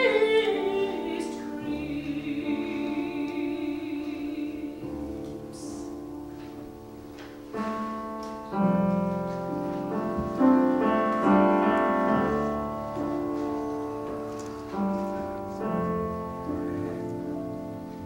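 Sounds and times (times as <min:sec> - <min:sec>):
slow piano chords: 0:00.0 - 0:18.0.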